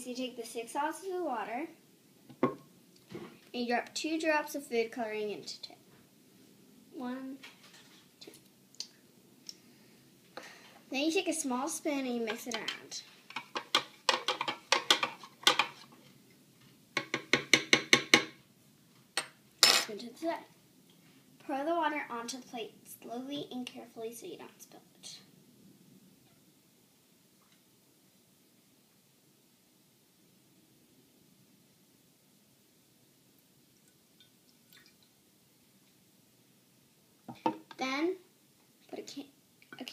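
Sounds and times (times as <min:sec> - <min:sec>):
water drips onto a plate: 0:33.8 - 0:35.2.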